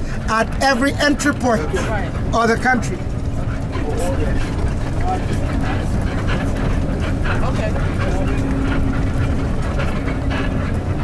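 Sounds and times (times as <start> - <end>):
bus engine drone and road noise: 0.0 - 11.0
faint voices: 0.0 - 11.0.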